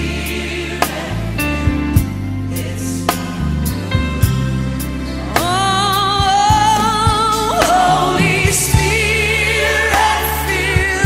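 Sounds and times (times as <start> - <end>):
bass and drums: 0.0 - 11.0
voices singing gospel song: 0.0 - 11.0.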